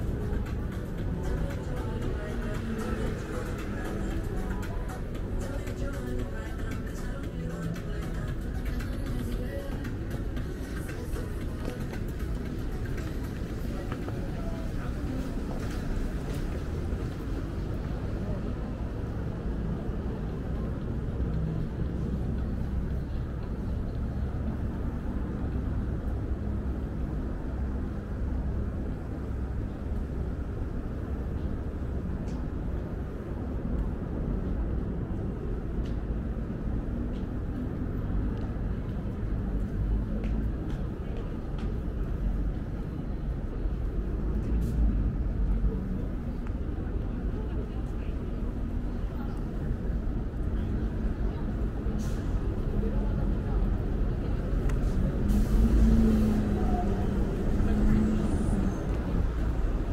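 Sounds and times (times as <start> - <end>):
indistinct voices: 0.0 - 26.0
traffic rumble: 0.0 - 59.9.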